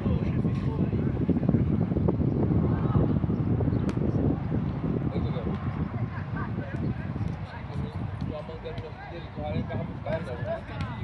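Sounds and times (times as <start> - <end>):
distant indistinct voices: 0.0 - 11.0
wind rumble on microphone: 0.0 - 11.0.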